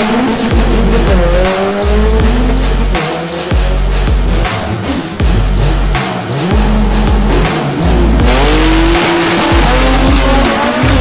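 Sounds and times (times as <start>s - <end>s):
music with deep bass beat: 0.0s - 11.0s
race cars running: 0.0s - 11.0s.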